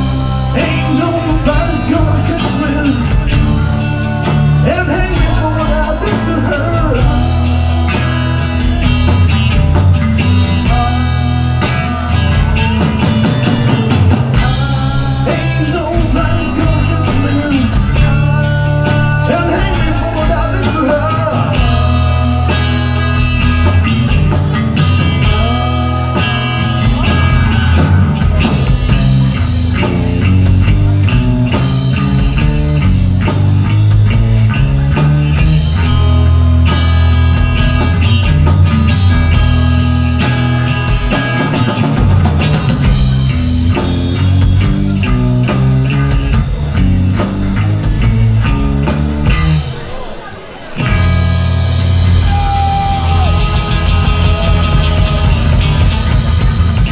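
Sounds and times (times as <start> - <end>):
rock band playing: 0.0 - 56.9.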